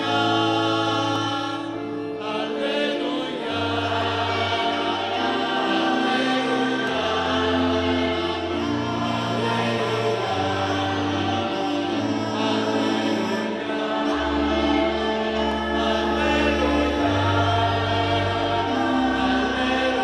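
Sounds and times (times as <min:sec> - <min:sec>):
choir singing a chant: 0:00.0 - 0:20.0
held low accompanying notes: 0:00.0 - 0:20.0.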